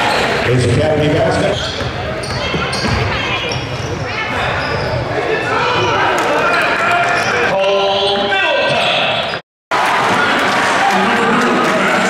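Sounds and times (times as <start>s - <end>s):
voices in a gym: 0.0s - 9.4s
sneakers squeaking: 1.1s - 9.4s.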